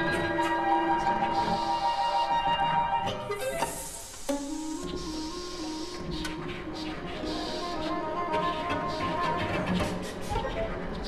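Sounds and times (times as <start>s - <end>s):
chamber music with electronics: 0.0s - 11.0s.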